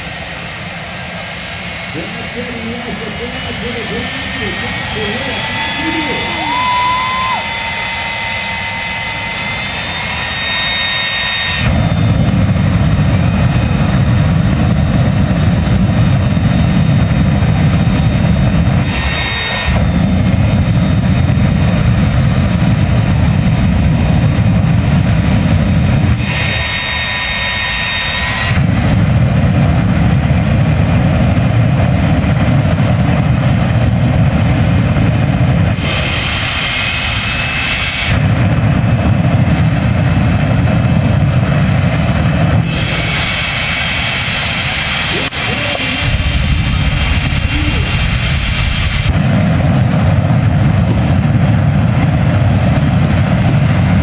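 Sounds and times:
high turbine whine: 0.0s - 54.0s
jet engine roar: 0.0s - 54.0s.

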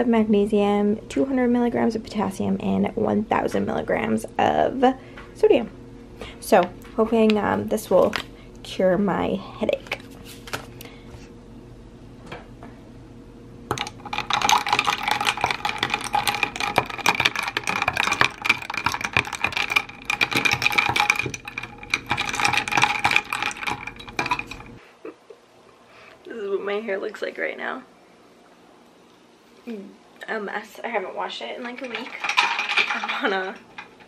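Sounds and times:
ice cubes clinking in plastic cup: 13.7s - 24.8s, 31.8s - 34.0s.

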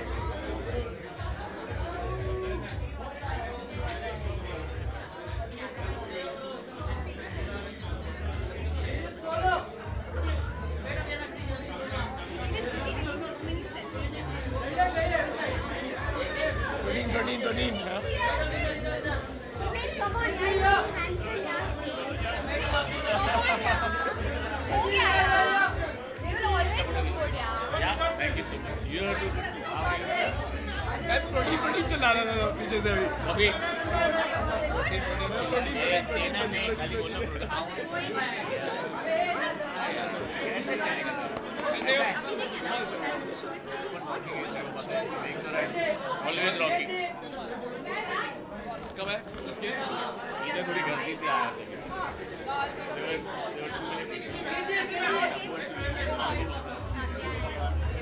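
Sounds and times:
background music beat: 0.0s - 37.5s, 55.8s - 58.0s
many people talking: 0.0s - 58.0s.

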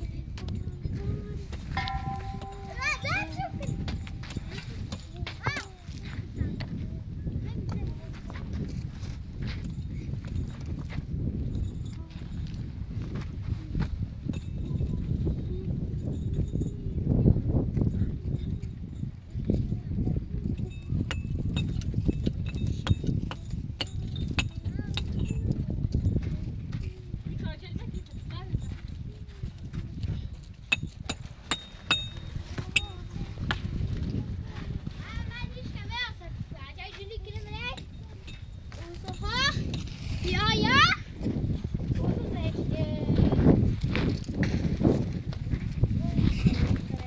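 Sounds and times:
hand pick chipping earth: 30.6s - 33.7s.

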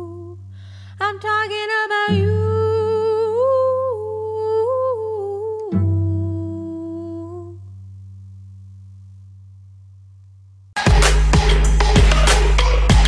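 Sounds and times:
woman humming: 2.1s - 7.6s.

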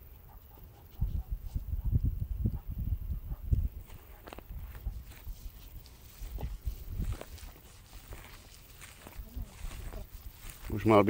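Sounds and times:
footsteps through grass: 3.2s - 11.0s.

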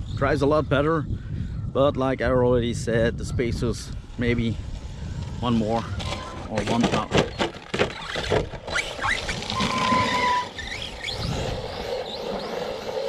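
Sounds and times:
tyres running over dirt: 4.7s - 13.0s
toy truck tumbling clatter: 5.8s - 12.2s
electric motor whining: 7.8s - 13.0s.

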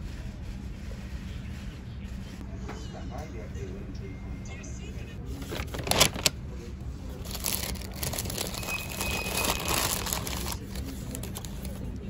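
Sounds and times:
paper bag rustling and crinkling: 5.4s - 6.4s, 7.1s - 12.0s.

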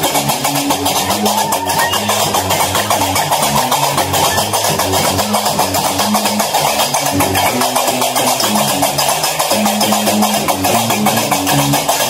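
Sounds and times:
plucked bass lute: 0.0s - 12.0s.

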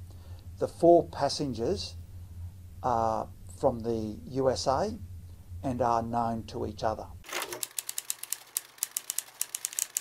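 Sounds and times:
rapid sharp clicks: 7.3s - 10.0s.

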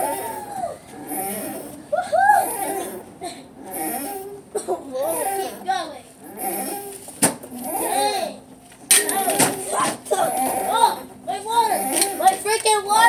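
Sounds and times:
children calling and shouting: 0.0s - 13.0s.

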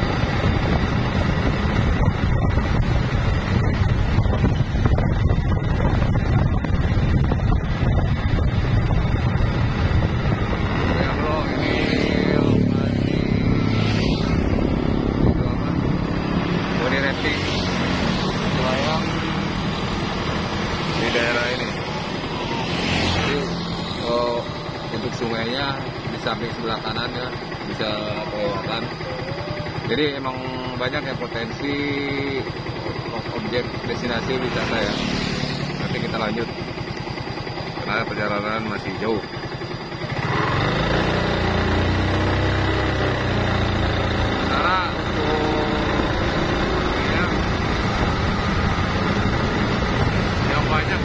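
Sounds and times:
wind on microphone: 0.0s - 25.2s
motorcycle engine riding: 0.0s - 51.0s
motorcycles passing: 0.0s - 51.0s
people's voices: 20.8s - 36.7s, 44.3s - 47.6s.

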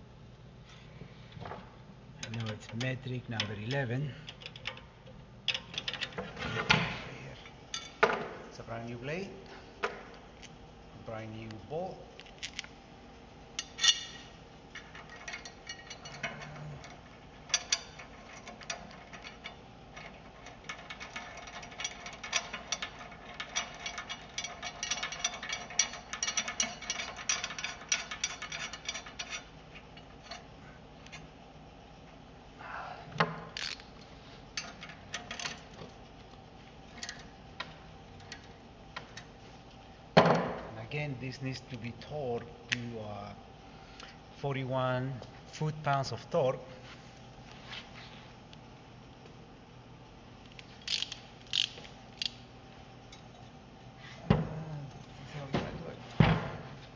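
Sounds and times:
metal clinks and knocks: 13.6s - 30.5s
ratchet wrench clicking: 50.8s - 52.4s.

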